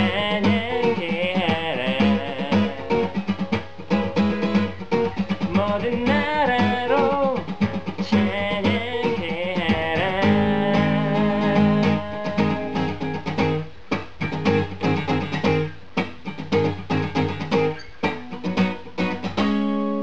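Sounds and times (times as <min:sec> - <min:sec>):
acoustic guitar strummed chords: 0:00.0 - 0:20.0.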